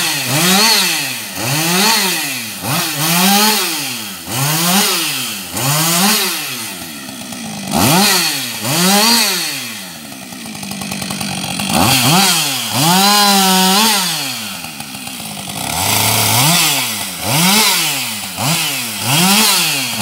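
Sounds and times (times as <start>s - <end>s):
chainsaw revving: 0.0s - 20.0s.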